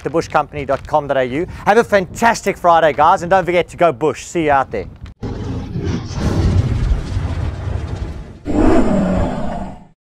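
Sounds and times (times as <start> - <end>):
low rumbling rush: 5.0 - 10.0
sudden loud crash: 5.2 - 9.9.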